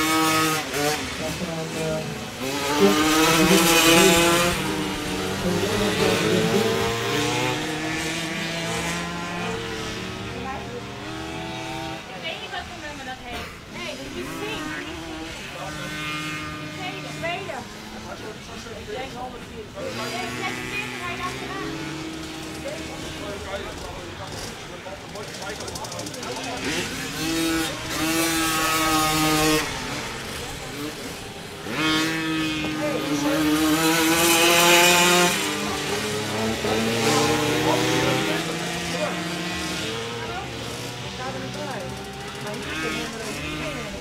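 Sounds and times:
small motorcycles racing: 0.0 - 44.0.

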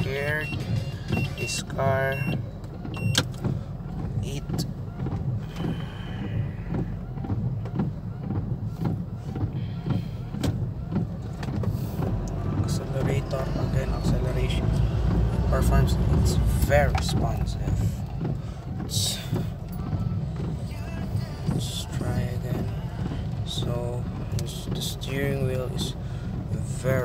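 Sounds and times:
car engine and cabin noise: 0.0 - 27.0
parking sensor beeping: 0.0 - 27.0.

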